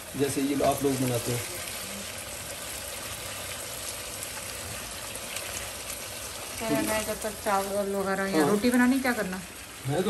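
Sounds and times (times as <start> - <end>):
chicken sizzling in hot oil: 0.0 - 10.0.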